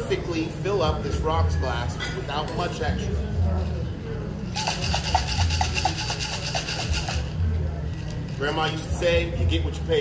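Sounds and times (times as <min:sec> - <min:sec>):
cocktail shaker rattling: 0:04.4 - 0:09.2.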